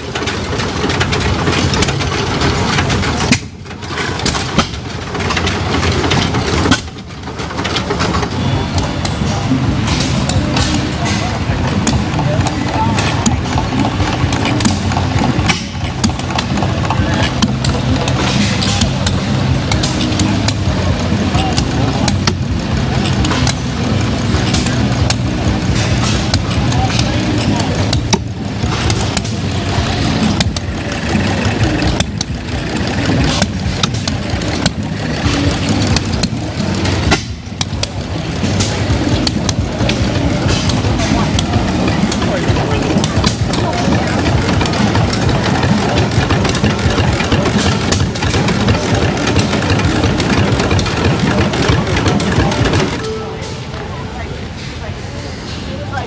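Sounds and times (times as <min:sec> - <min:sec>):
model gas engines popping: 0:00.0 - 0:56.0.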